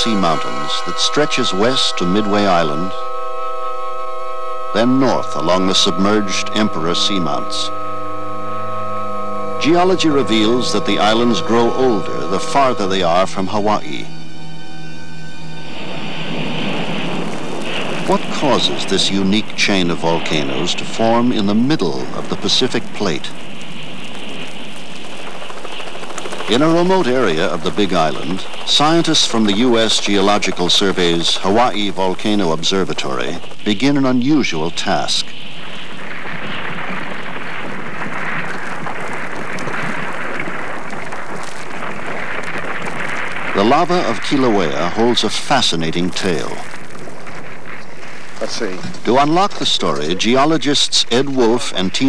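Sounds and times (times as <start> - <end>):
lava flow crackling: 0.0 - 52.0
steam venting: 0.0 - 52.0.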